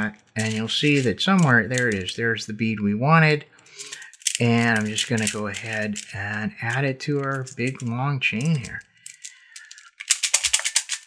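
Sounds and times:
plastic beads clicking: 0.2s - 2.1s, 3.8s - 11.0s.

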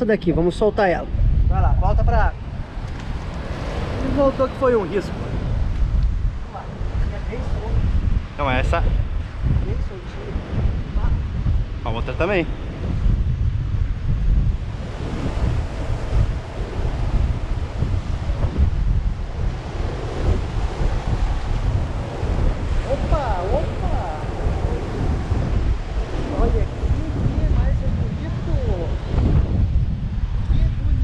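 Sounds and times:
heavy surf breaking: 0.0s - 31.0s
wind buffeting microphone: 0.0s - 31.0s.

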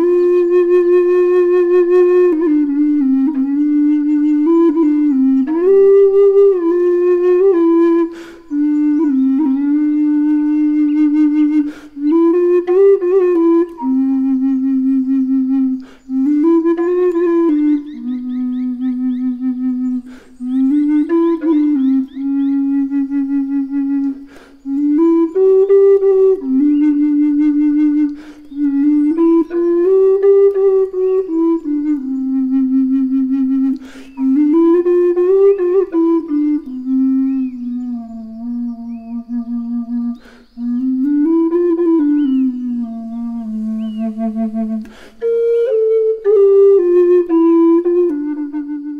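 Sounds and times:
low flute note: 0.0s - 48.9s
breath intake: 8.1s - 8.5s, 11.6s - 12.0s, 15.8s - 16.1s, 20.0s - 20.4s, 24.2s - 24.7s, 28.1s - 28.5s, 33.8s - 34.2s, 40.2s - 40.6s, 44.8s - 45.2s.

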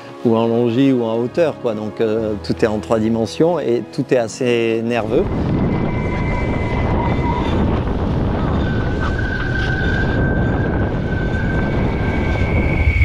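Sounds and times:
thin high whine: 5.0s - 13.0s
wind buffeting microphone: 5.0s - 13.0s.

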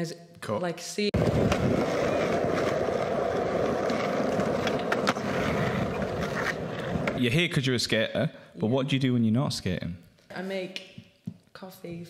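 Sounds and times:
skateboard clicks: 1.2s - 7.2s
skateboard wheels rolling on tarmac: 1.2s - 7.2s.

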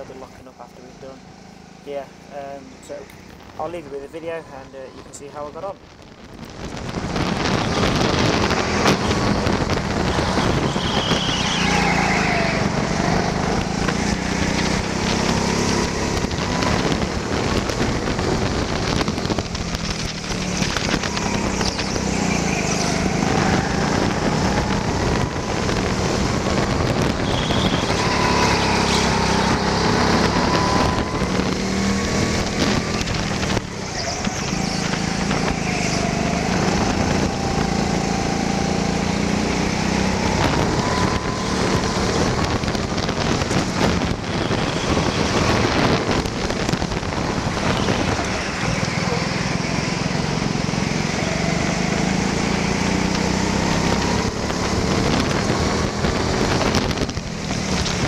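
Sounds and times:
go-kart engine: 0.0s - 3.7s, 6.5s - 58.0s.

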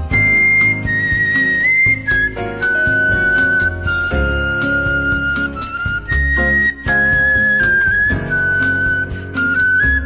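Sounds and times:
bamboo flute melody: 0.0s - 10.0s
low steady accompaniment: 0.0s - 10.0s.

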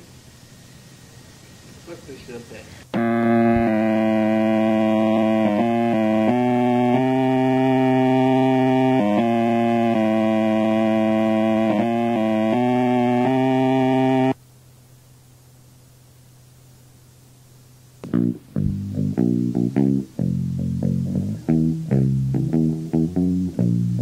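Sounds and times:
faint low hum: 0.0s - 24.0s
sustained electronic tone: 2.9s - 14.4s.

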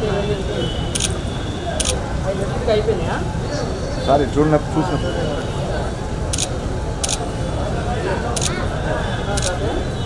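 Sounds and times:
crowd chatter: 0.0s - 10.0s
camera shutter clicks: 6.3s - 7.2s, 9.4s - 9.6s.

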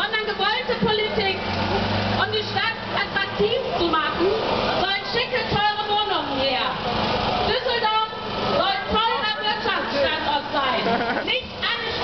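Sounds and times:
people talking: 0.0s - 1.4s, 2.2s - 6.8s, 7.5s - 12.0s
engine idling hum: 0.0s - 12.0s.

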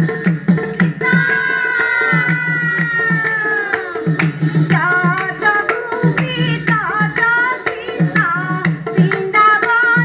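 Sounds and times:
steady drum beat: 0.0s - 10.0s
women's chorus singing: 1.0s - 6.5s.

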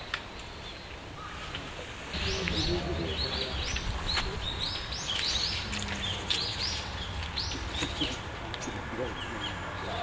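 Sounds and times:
songbirds chirping: 0.0s - 10.0s.

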